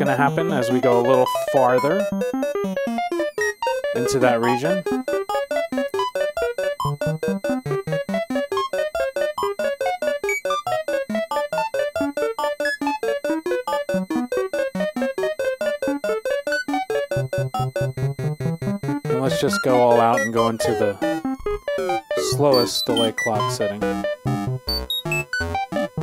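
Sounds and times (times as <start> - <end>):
synthesizer random-pitched notes: 0.0 - 26.0.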